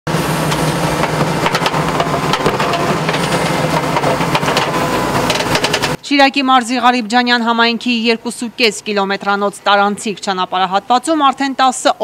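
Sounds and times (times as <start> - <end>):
excavator diesel engine running: 0.1 - 6.3
metal bucket scraping stones: 0.4 - 6.0.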